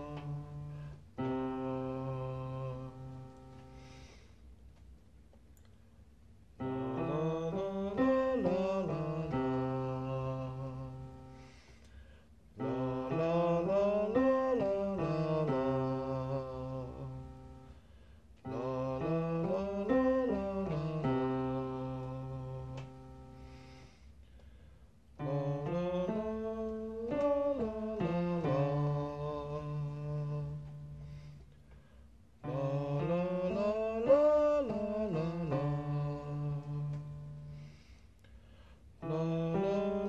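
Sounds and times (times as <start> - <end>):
man singing vocal scales: 0.0 - 3.6, 6.6 - 11.5, 12.6 - 17.6, 18.4 - 23.2, 25.2 - 31.3, 32.4 - 37.7, 39.0 - 40.0
digital piano: 0.0 - 4.0, 6.6 - 11.5, 12.6 - 17.8, 18.4 - 23.7, 32.4 - 37.6.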